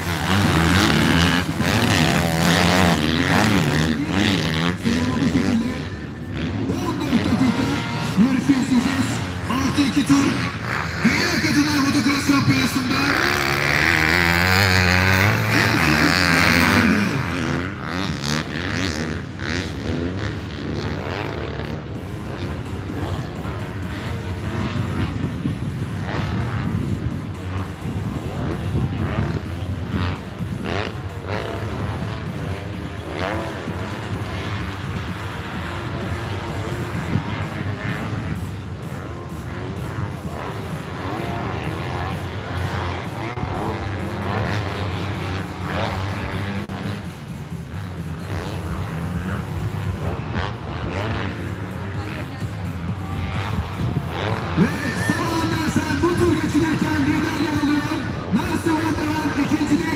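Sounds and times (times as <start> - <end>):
distant bikes revving: 0.0 - 59.9
motocross bike revving hard: 0.0 - 59.9.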